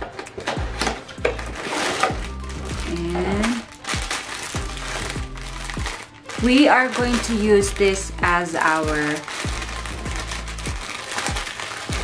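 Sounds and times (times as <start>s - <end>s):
soft background music: 0.0s - 12.0s
plastic bag crinkling: 0.4s - 12.0s.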